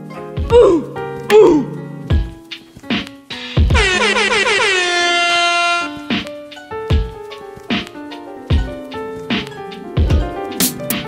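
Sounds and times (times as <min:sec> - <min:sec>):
kick drum hit: 0:00.4 - 0:00.8, 0:02.1 - 0:02.4, 0:03.6 - 0:04.0, 0:06.9 - 0:07.2, 0:08.5 - 0:08.8, 0:10.0 - 0:10.4
air horn blasts: 0:03.8 - 0:06.0.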